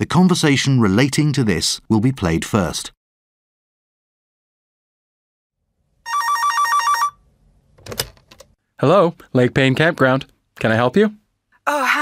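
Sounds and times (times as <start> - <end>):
electronic telephone ringing: 6.0 - 7.2.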